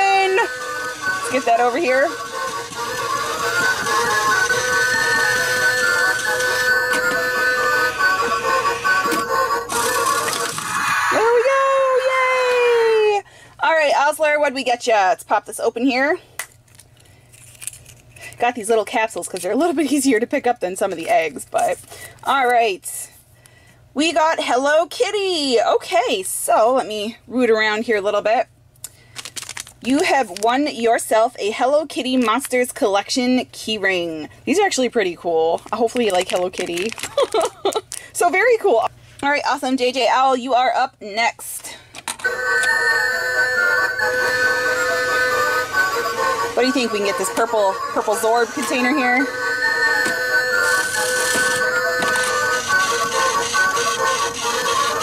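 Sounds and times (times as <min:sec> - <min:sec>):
plastic handling noise: 0:29.1 - 0:30.4, 0:35.5 - 0:38.1
electronic beeping game tune: 0:43.6 - 0:55.0.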